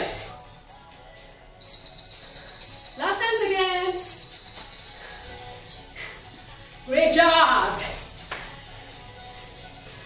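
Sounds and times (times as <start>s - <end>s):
high-pitched electronic beep: 1.6s - 5.6s.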